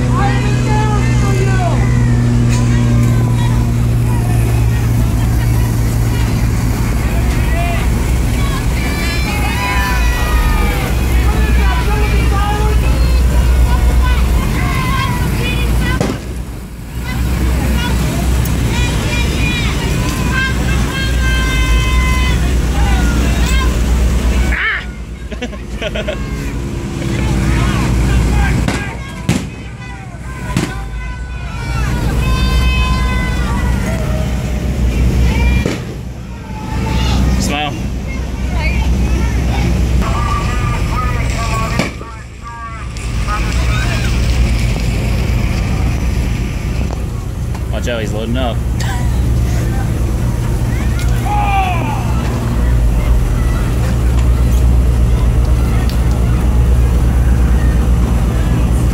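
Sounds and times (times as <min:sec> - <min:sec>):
boat engine droning: 0:00.0 - 0:58.9
people shouting and chattering: 0:00.0 - 0:58.9.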